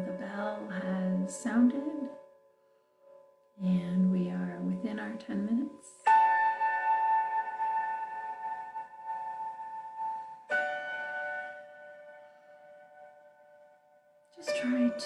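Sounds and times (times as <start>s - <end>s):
meditation bell ringing: 6.0s - 15.0s.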